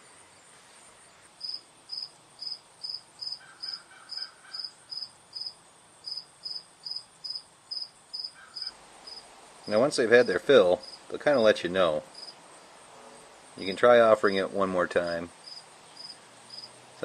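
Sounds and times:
insect chirping: 0:00.0 - 0:17.0.

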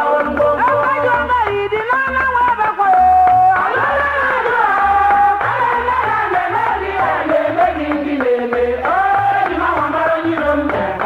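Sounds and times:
percussion beat: 0:00.0 - 0:11.0
group of women chanting: 0:05.5 - 0:11.0.

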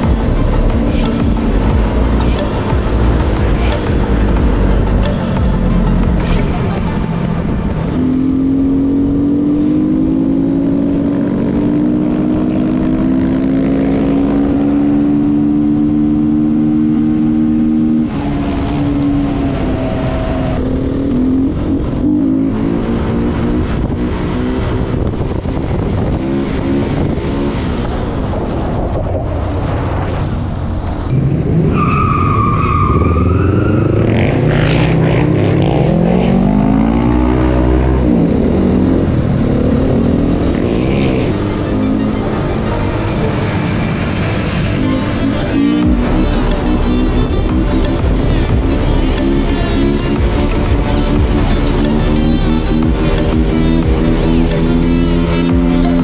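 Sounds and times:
wavering high tone: 0:00.0 - 0:10.1, 0:39.9 - 0:56.0
motorcycle engine running: 0:00.0 - 0:14.6, 0:38.9 - 0:56.0.

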